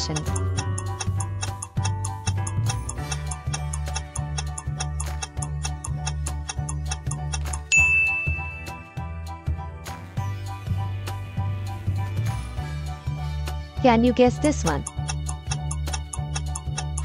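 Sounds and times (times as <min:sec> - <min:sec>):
clock-like ticking: 0:00.0 - 0:07.8, 0:14.3 - 0:17.0
bright ding: 0:07.7 - 0:09.0.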